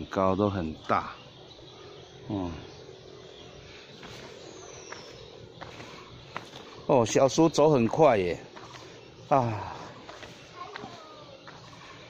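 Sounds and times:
woodland ambience: 0:00.0 - 0:12.0
footsteps on paved trail: 0:02.8 - 0:12.0.

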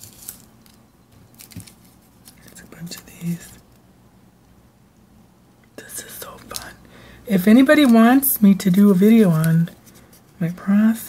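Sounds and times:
paper rustling: 0:00.0 - 0:03.6.

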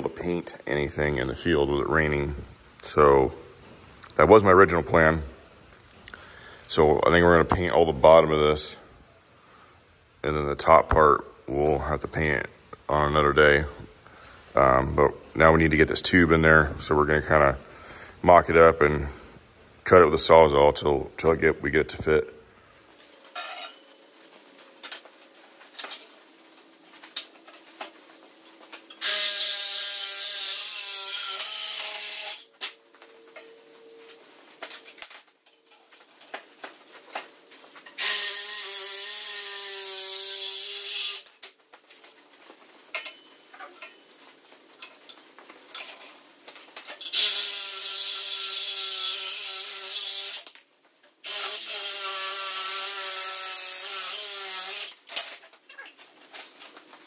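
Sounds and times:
reciprocating saw cutting metal: 0:29.0 - 0:32.5, 0:38.0 - 0:41.3
handling clinks and knocks: 0:34.6 - 0:36.5.

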